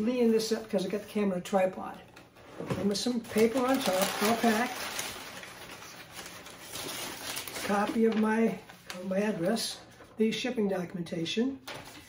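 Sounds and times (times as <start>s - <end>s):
packing paper rustling and crinkling: 2.2s - 10.2s, 11.6s - 12.0s.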